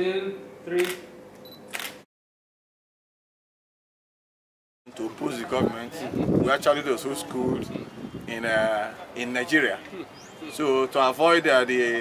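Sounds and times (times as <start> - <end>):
camera shutter: 0.8 - 2.1.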